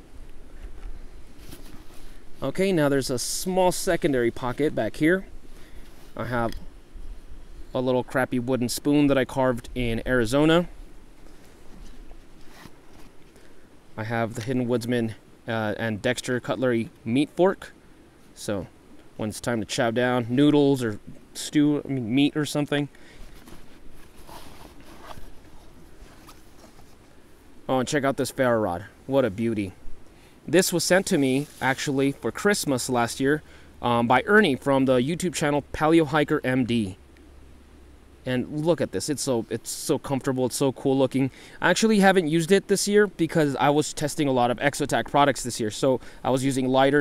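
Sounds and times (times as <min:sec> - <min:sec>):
low steady rumble: 0:00.0 - 0:47.0
fabric and gear rustling: 0:00.6 - 0:02.5, 0:11.2 - 0:13.4, 0:23.1 - 0:27.2.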